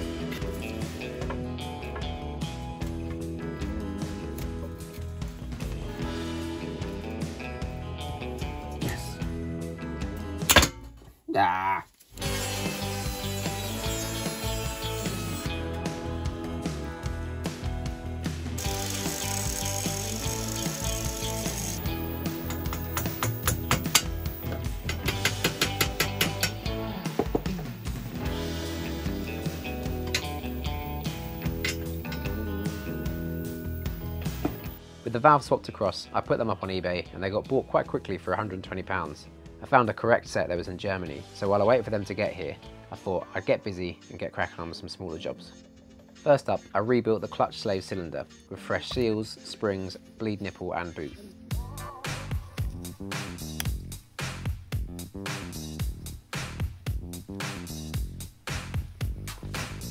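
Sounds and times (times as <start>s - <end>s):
background music: 0.0s - 59.9s
angle grinder cutting steel: 12.2s - 15.5s, 18.6s - 26.8s, 28.8s - 34.8s.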